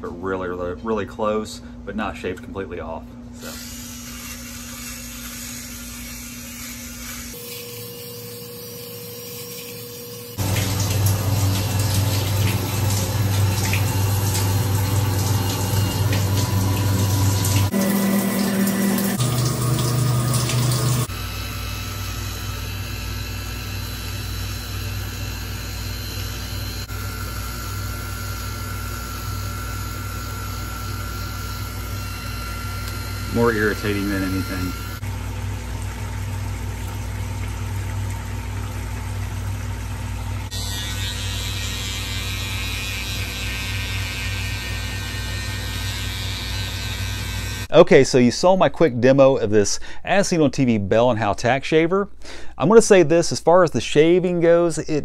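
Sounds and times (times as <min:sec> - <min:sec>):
electric razor buzzing: 0:03.4 - 0:35.0, 0:40.5 - 0:47.7
water running: 0:07.3 - 0:21.1, 0:32.6 - 0:40.6.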